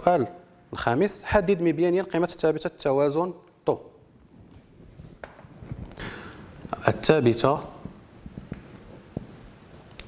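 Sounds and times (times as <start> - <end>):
marker scratching on whiteboard: 7.6 - 10.0.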